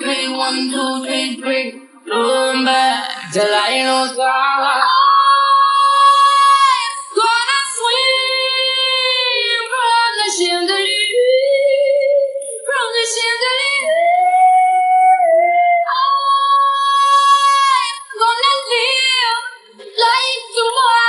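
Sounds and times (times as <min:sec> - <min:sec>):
woman singing: 0:00.0 - 0:21.0.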